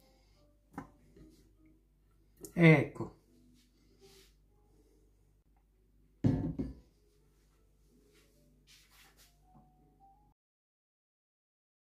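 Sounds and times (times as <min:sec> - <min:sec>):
loud knock: 0:06.2 - 0:06.8.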